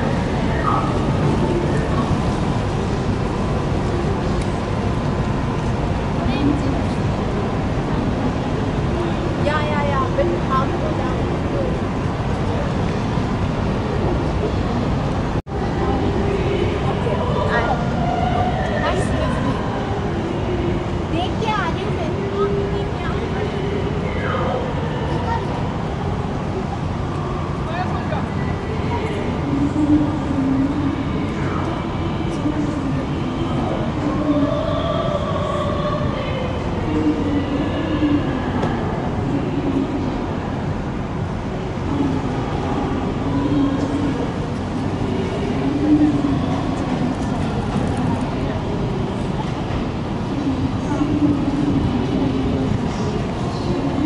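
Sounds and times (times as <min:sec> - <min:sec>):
diesel engines rumbling: 0:00.0 - 0:54.0
people talking: 0:00.0 - 0:54.0.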